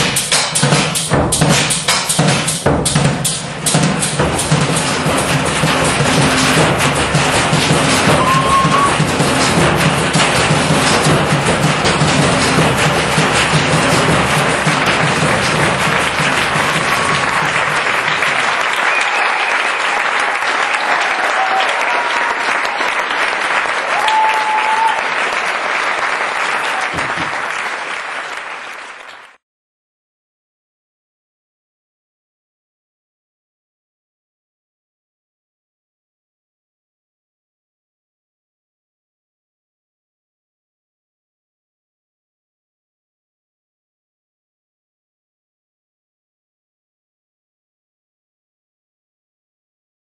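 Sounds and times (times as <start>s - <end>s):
audience applauding and cheering: 5.4s - 10.6s, 11.2s - 29.4s
short whistles: 8.1s - 9.0s.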